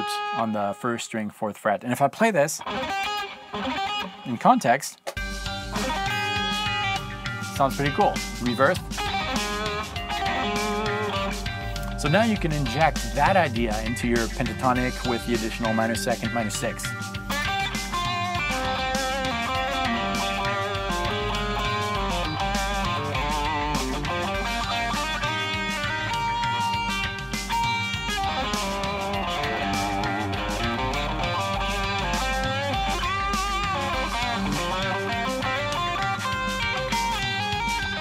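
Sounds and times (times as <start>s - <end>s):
electric guitar lead: 2.6s - 4.4s, 5.1s - 38.0s
backing track with bass and drums: 5.1s - 38.0s.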